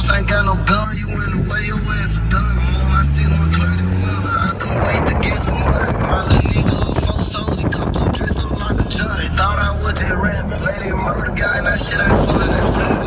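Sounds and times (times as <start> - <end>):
engine accelerating: 0.0 - 13.0
music playing: 0.0 - 13.0
wind noise rushing: 2.8 - 13.0.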